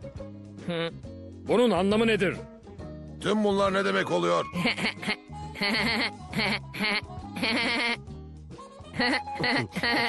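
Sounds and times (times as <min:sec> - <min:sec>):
background music: 0:00.0 - 0:10.0
cartoon voices laughing: 0:04.6 - 0:08.0, 0:09.0 - 0:10.0.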